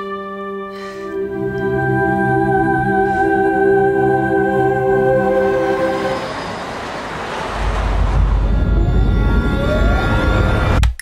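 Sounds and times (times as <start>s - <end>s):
music: 0.0s - 6.2s
even rushing noise: 1.1s - 10.8s
bus interior rumble: 1.2s - 10.8s.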